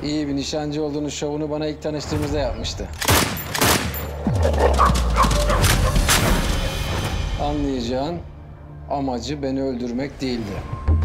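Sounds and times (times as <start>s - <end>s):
shotgun shots: 3.0s - 4.1s.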